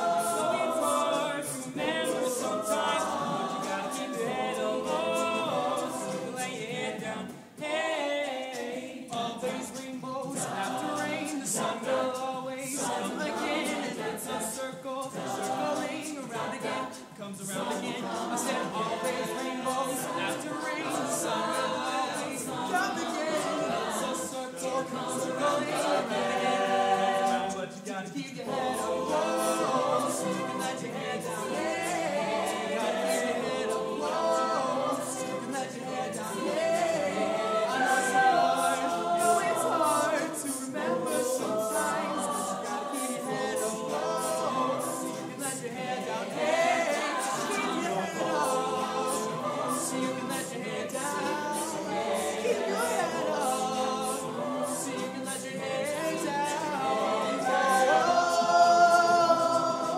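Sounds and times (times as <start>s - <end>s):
choir singing a cappella: 0.0s - 59.9s.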